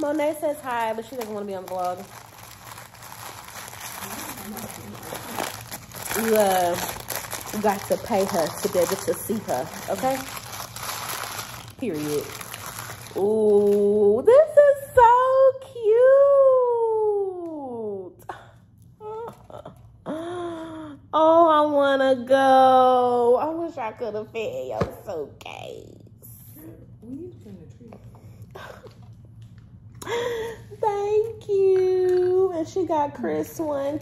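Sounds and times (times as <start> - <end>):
wrapping paper crinkling: 0.0 - 14.0.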